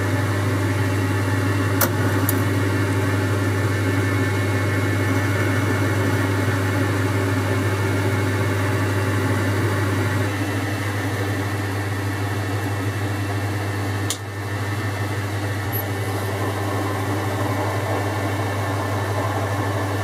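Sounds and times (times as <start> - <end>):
metal lathe running: 14.8 - 20.0.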